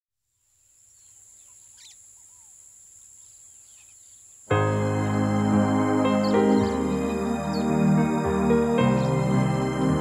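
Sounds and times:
insects trilling: 0.3s - 9.7s
bird chirps: 0.8s - 4.5s, 6.0s - 9.3s.

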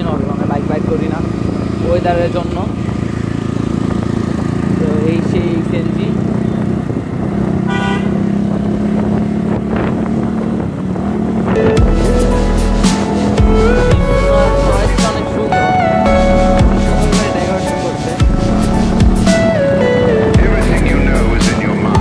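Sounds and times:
motorcycle engine running: 0.0s - 22.0s
vehicle horn toot: 7.6s - 8.2s
music with heavy bass: 11.5s - 22.0s.

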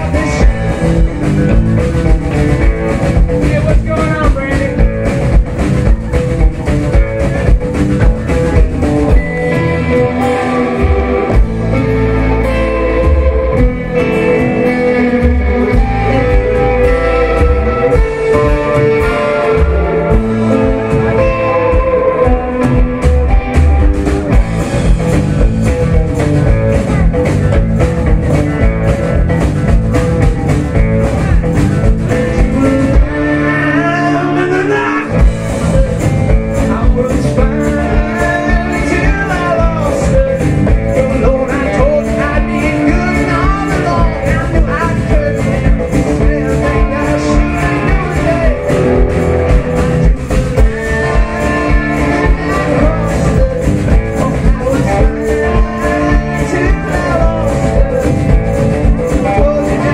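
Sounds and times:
drumbeat: 0.0s - 33.8s, 35.0s - 59.9s
electric guitar lead line: 0.0s - 59.9s
rock band playing: 0.0s - 59.9s
sustained bass notes: 0.0s - 59.9s.

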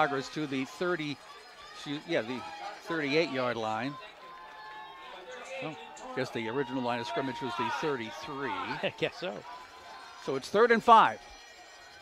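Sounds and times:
football game broadcast ambience: 0.0s - 12.0s.

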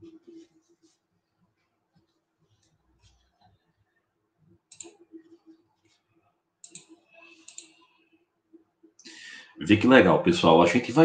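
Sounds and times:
faint steady hum: 0.0s - 11.0s
computer clicking and rustling: 4.6s - 7.8s.

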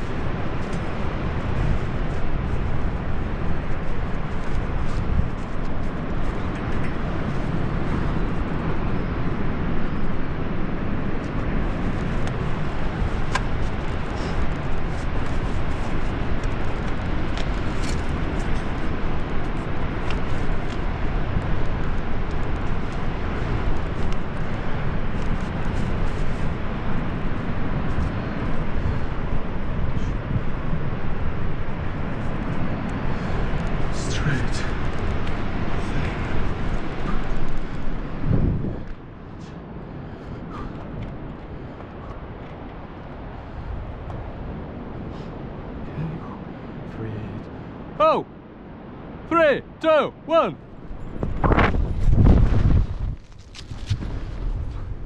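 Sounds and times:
wind buffeting microphone: 0.0s - 49.2s, 50.6s - 55.0s
climbing gear clicks: 11.2s - 27.1s, 51.5s - 54.8s.

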